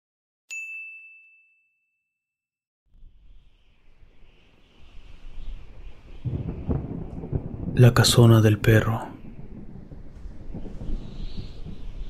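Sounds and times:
high bell ding: 0.5s - 2.4s.

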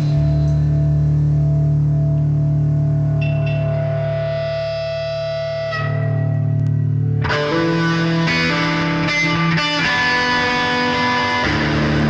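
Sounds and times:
bass drone: 0.0s - 12.0s
distorted electric guitars: 0.0s - 12.0s.

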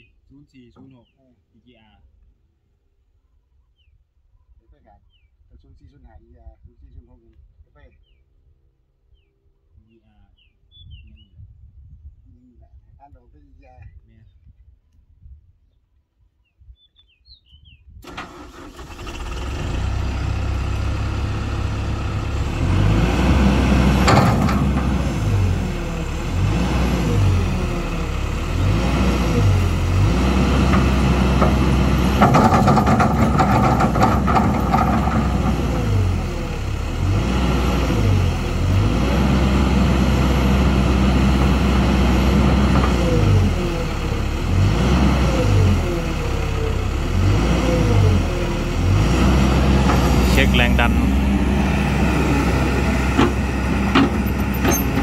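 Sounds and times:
diesel excavator engine: 18.0s - 55.0s
hydraulic whine: 18.1s - 55.0s.

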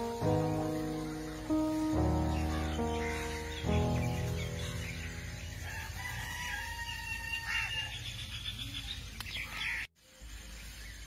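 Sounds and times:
rooster crowing: 5.3s - 8.1s.

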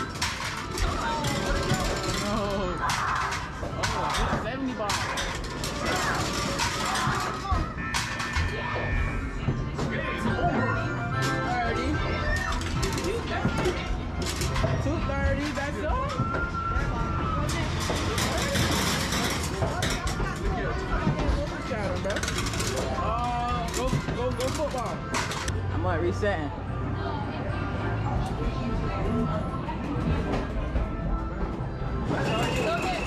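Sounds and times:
babble of voices: 0.8s - 4.8s, 26.8s - 31.3s.

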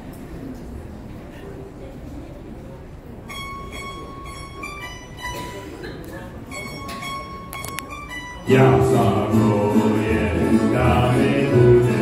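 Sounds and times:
audience chatter: 0.0s - 12.0s.

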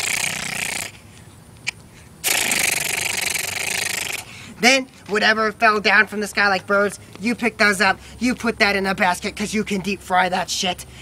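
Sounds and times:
man imitating gunfire with mouth: 0.0s - 1.0s, 2.2s - 4.4s.

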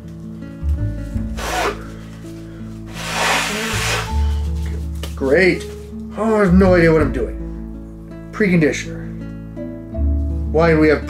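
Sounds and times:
disposable glove rustling: 0.0s - 6.1s
background music with low notes: 0.0s - 11.0s.

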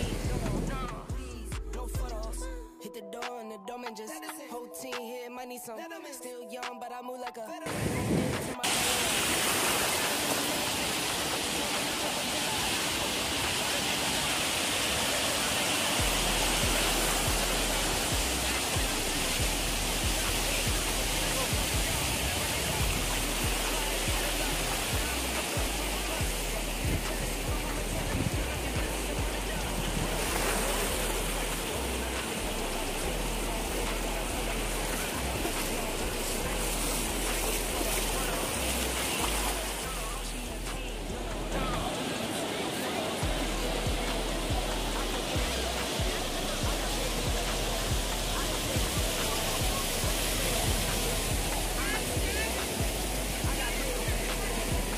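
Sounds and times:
surf washing ashore: 0.0s - 1.2s, 7.6s - 54.9s
background music with deep bass: 0.0s - 54.9s.

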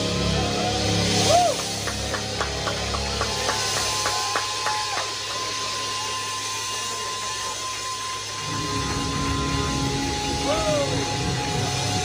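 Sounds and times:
buzzing hiss of amplified noise: 0.0s - 12.0s
distorted bass and guitar: 5.1s - 12.0s.

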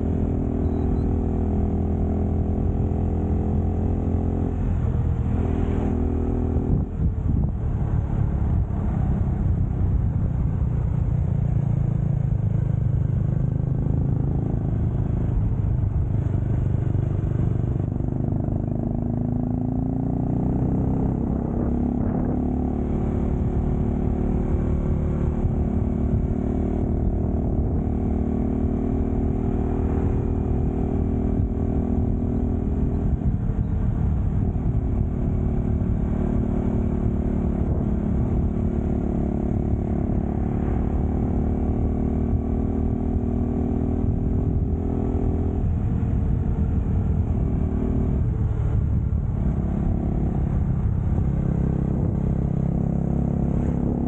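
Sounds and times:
motorcycle engine riding at speed: 0.0s - 54.0s.

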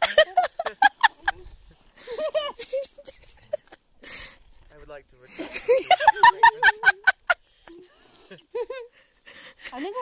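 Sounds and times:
person laughing: 0.0s - 3.8s, 5.4s - 7.4s.

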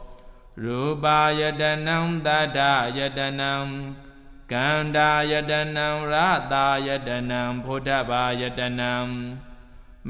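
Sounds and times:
man chanting: 0.0s - 9.5s.

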